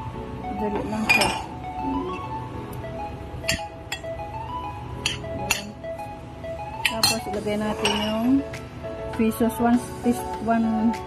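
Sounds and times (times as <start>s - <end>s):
background music with melody: 0.0s - 11.0s.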